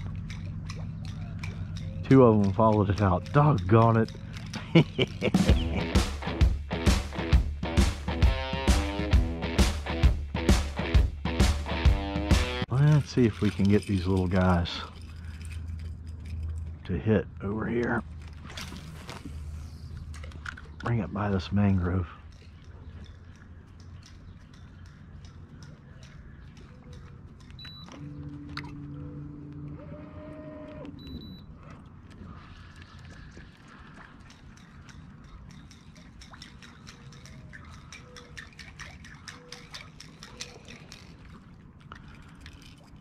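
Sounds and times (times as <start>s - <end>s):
electric motor low hum: 27.6s - 31.6s.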